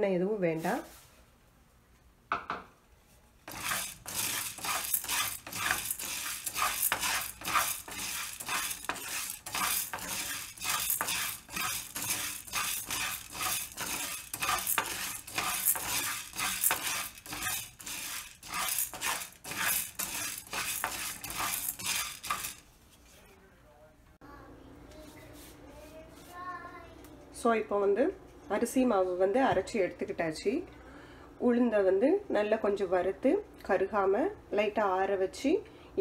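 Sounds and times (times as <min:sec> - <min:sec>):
wooden spatula scraping frying pan: 0:03.4 - 0:23.1.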